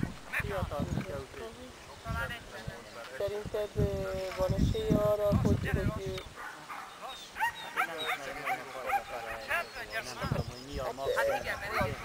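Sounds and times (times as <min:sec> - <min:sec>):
dog yipping: 0:06.4 - 0:09.5.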